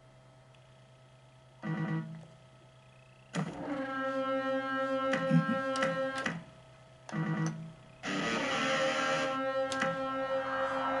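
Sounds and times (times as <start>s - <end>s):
pitched electronic tone: 7.2s - 11.0s
loud electronic held chord: 8.0s - 11.0s.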